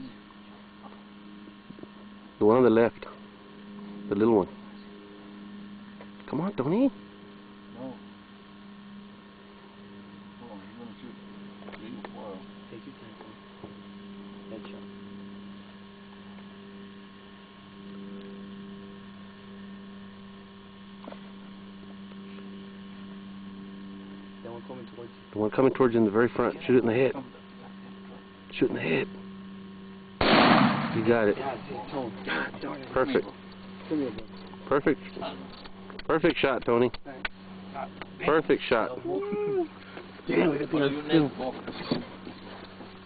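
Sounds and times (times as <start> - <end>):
steady electrical hum: 0.0 - 43.0
gunshot: 30.2 - 31.1.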